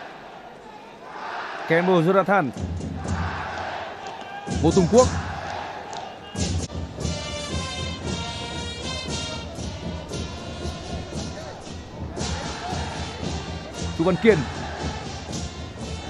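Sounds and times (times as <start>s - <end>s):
stadium crowd: 0.0s - 16.0s
drums beating: 2.4s - 16.0s.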